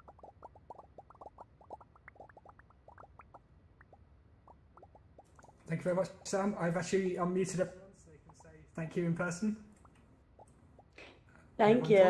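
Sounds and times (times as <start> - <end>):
rapid rising pop blips: 0.0 - 6.9, 9.8 - 11.0.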